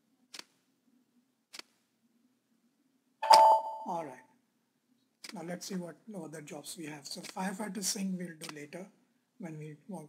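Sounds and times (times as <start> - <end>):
computer notification chime: 3.2 - 4.2
person speaking: 3.2 - 4.3.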